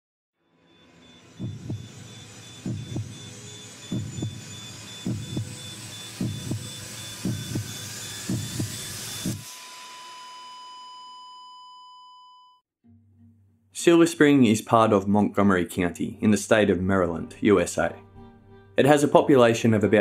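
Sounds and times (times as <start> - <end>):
steady ringing tone: 0.4 - 12.6
heartbeat: 1.4 - 9.4.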